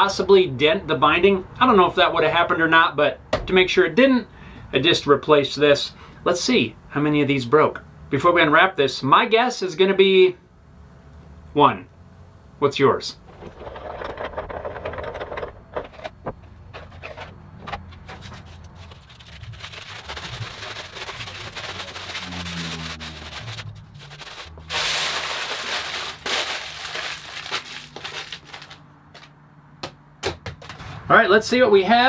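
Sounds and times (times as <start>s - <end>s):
aluminium foil crumpling: 18.0s - 29.3s.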